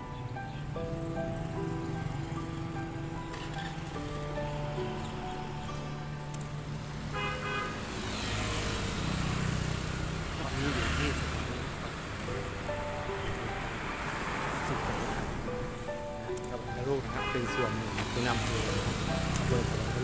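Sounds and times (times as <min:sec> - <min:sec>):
background music: 0:00.0 - 0:20.0
vehicle passing by: 0:00.0 - 0:20.0.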